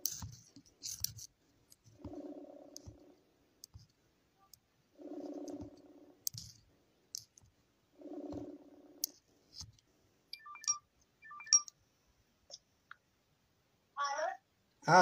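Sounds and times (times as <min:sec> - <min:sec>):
telephone ringing tone: 0:10.4 - 0:11.7.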